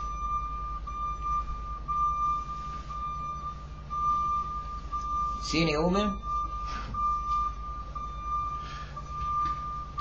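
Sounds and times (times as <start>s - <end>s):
high whistle-like tone: 0.0s - 10.0s
low hum: 0.0s - 10.0s.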